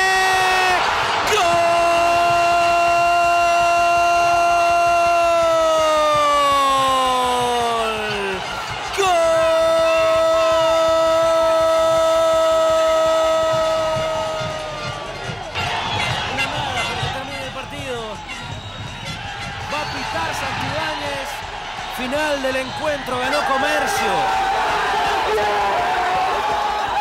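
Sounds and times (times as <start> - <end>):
commentator crying goal: 0.0 - 15.0, 16.3 - 18.6, 19.6 - 24.4
crowd noise: 0.0 - 27.0.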